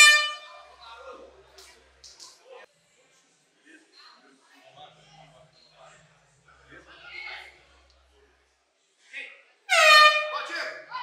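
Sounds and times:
air horn blast: 0.0 - 0.6, 9.7 - 10.5.

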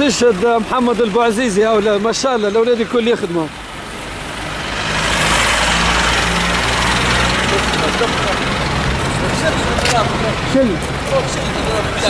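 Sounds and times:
vehicle engine running: 0.0 - 2.6, 3.6 - 12.0
street noise hiss: 0.0 - 12.0.

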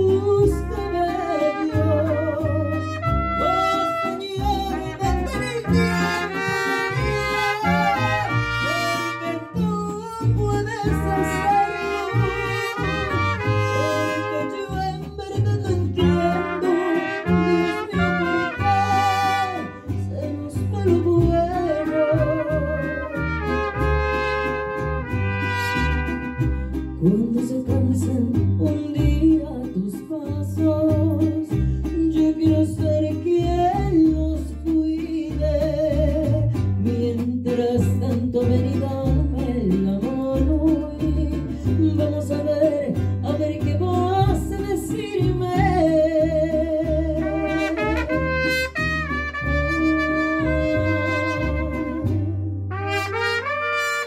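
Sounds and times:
woman singing into a microphone: 0.0 - 6.2, 7.0 - 13.0, 13.6 - 23.2, 27.0 - 48.1, 49.5 - 52.7
mariachi band playing: 0.0 - 54.0
trumpets playing: 0.6 - 9.7, 10.9 - 14.7, 16.3 - 19.9, 21.8 - 27.0, 47.2 - 54.0.

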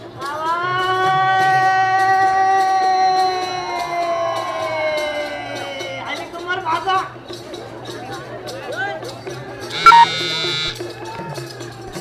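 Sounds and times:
voices: 9.4 - 10.8
live folk music: 9.4 - 12.0
loud buzzy tone: 9.8 - 10.8.

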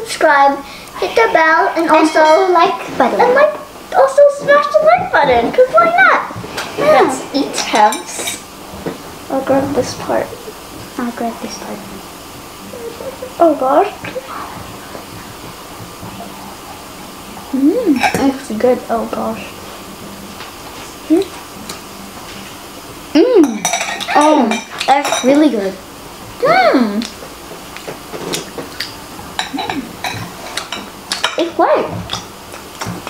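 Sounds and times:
room noise hiss: 0.0 - 33.0
forks tapping and scraping on plate: 7.6 - 9.0, 18.0 - 18.3, 23.4 - 25.4, 27.8 - 33.0.

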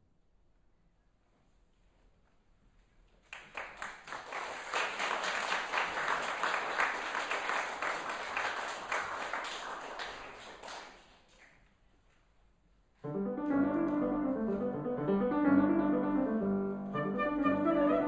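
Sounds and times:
audience applauding: 3.3 - 11.6.

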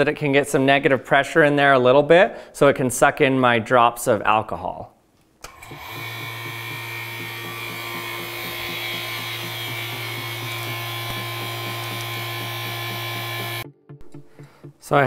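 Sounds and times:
vacuum pump humming and hissing: 5.4 - 13.6.

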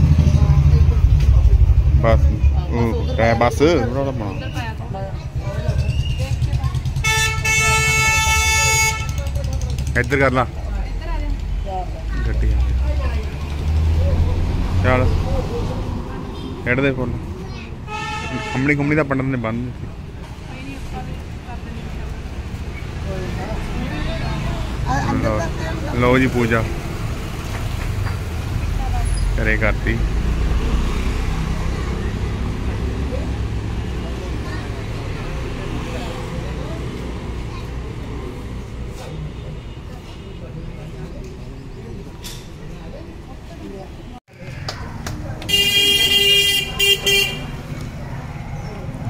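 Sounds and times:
low rumble: 0.0 - 2.7
people talking quietly: 0.0 - 49.0.

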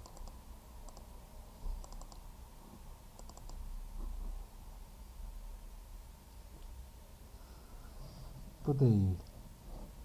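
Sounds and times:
computer mouse clicking: 0.0 - 1.1, 1.8 - 2.2, 3.2 - 3.6
faint low hum: 0.0 - 10.0.

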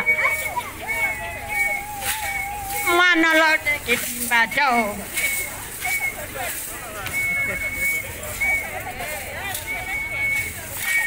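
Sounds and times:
whistle blasts: 0.0 - 11.0.

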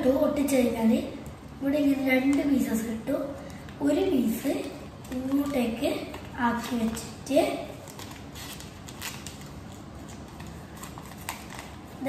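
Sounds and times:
paper being folded and creased: 4.6 - 12.0.

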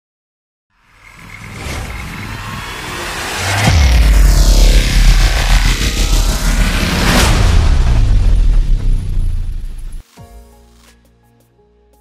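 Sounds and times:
rising noise swell: 0.8 - 10.0
electronic music: 0.9 - 10.0
deep bass hit: 1.0 - 10.0.

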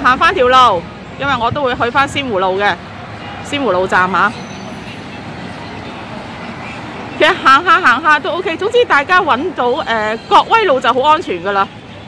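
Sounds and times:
city street traffic: 0.0 - 12.0.

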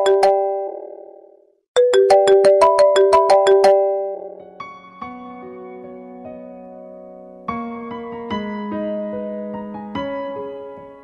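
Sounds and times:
marimba-like ringtone: 0.0 - 1.0, 1.8 - 4.4.

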